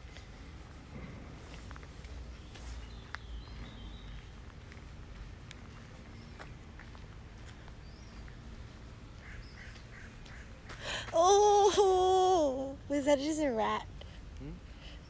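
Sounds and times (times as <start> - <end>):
footsteps on gravel: 0.0 - 11.6.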